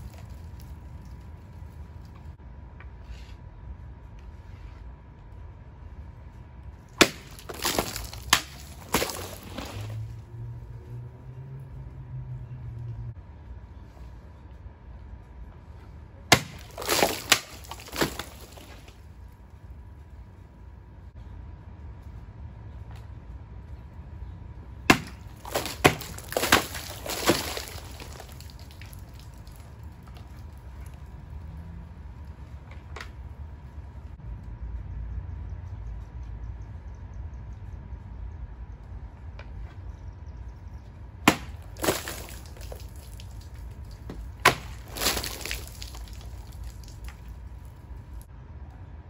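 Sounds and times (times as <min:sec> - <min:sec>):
carton pieces clattering: 0:07.0 - 0:10.1, 0:16.3 - 0:18.9, 0:24.9 - 0:30.3, 0:41.3 - 0:43.5, 0:44.4 - 0:47.3.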